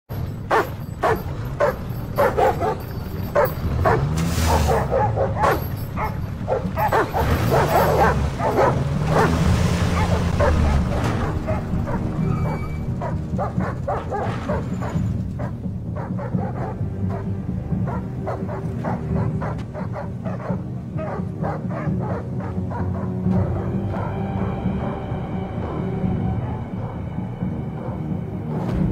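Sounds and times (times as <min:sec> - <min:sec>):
background music: 0:00.1 - 0:28.9
large dog barking aggressively: 0:00.5 - 0:12.2, 0:13.0 - 0:23.7.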